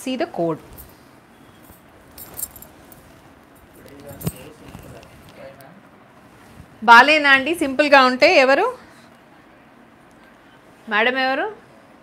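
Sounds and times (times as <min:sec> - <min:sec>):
fabric rustling: 0:00.3 - 0:08.0
glass bangles jingling: 0:00.7 - 0:05.0.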